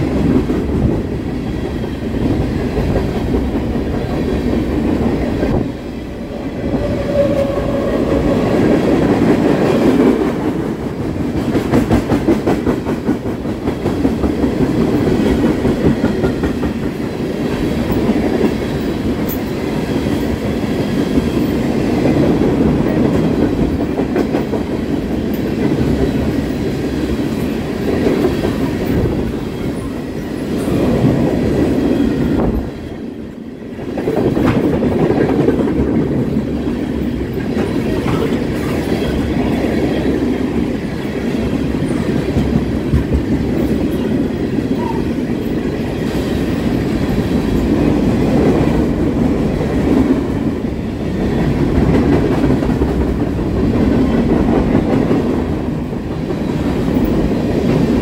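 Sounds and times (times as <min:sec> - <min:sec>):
freight train wheels rumbling: 0:00.0 - 0:58.0
wheels clickety-clack on track: 0:00.0 - 0:58.0.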